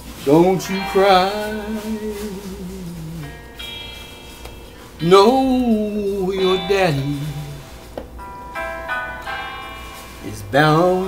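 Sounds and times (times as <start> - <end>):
instrumental backing chords: 0.0 - 11.0.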